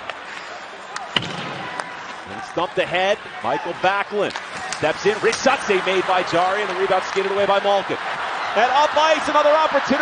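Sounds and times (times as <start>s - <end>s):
hockey sticks hitting puck: 3.8s - 8.4s.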